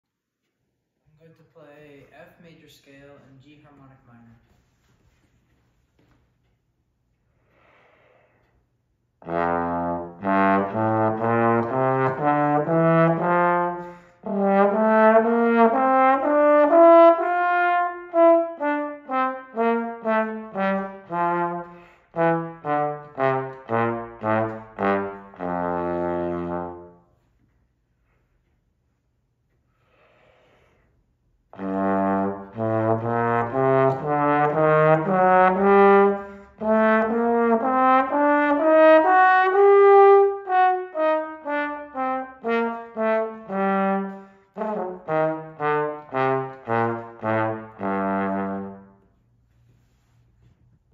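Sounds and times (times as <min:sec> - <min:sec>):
trombone playing scales: 0:09.2 - 0:27.2, 0:31.5 - 0:49.1.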